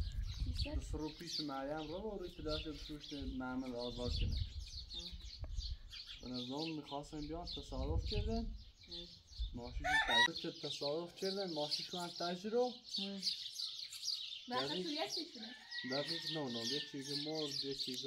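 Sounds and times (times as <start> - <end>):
people talking outdoors: 0.0 - 18.0
small birds chirping: 0.0 - 18.0
loud rising bird call: 9.8 - 10.4.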